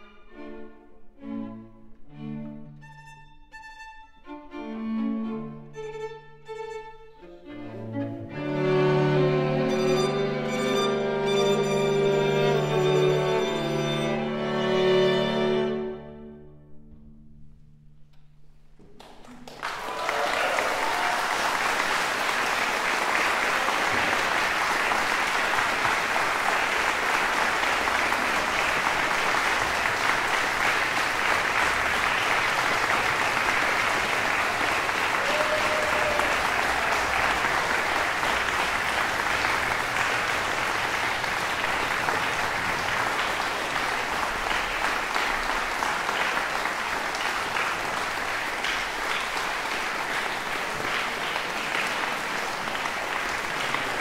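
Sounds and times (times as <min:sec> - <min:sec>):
audience applauding: 0:18.8 - 0:54.0.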